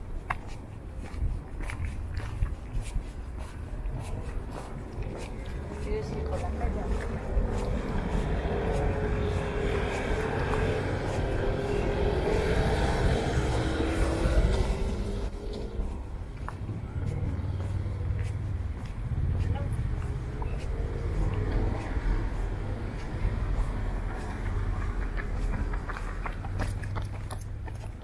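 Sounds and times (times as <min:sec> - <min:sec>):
car driving past: 0:06.9 - 0:18.9.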